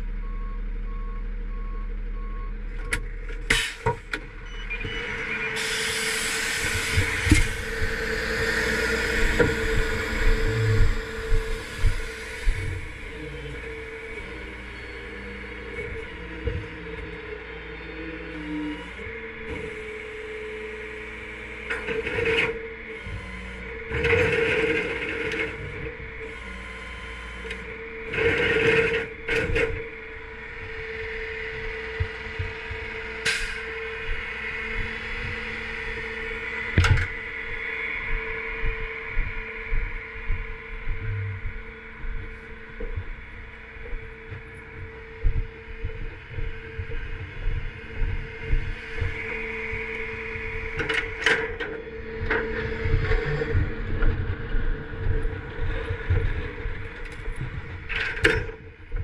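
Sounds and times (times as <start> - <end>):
tow truck mechanical hum: 0.0 - 59.0.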